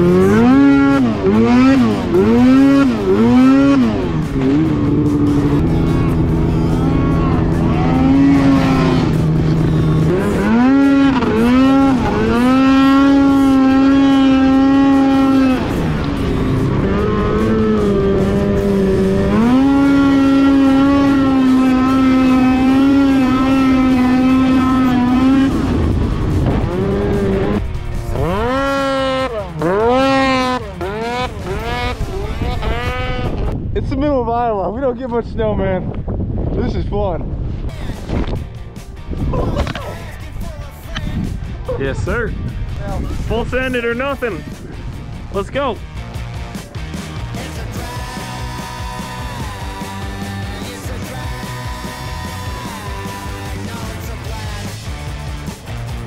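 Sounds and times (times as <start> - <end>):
snowmobile engine revving: 0.0 - 33.6, 45.4 - 56.0.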